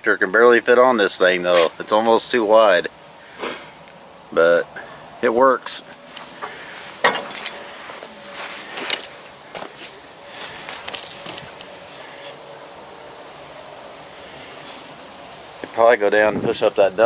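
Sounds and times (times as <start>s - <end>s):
faint steady hum: 0.0s - 17.0s
scattered clicks and scuffs: 7.3s - 12.4s.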